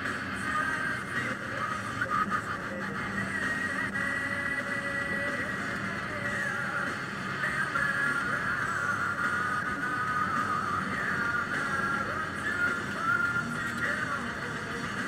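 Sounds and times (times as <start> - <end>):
car driving noise: 0.0 - 15.0
music on car radio: 0.0 - 15.0.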